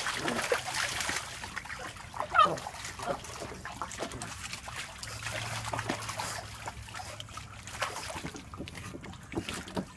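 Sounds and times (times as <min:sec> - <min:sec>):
shallow water splashing: 0:00.0 - 0:09.9.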